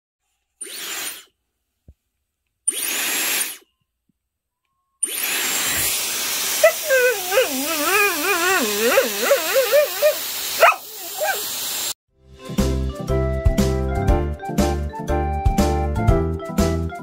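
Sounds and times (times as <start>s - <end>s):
hair dryer blowing: 5.0s - 12.0s
dog howling grumble: 6.6s - 11.4s.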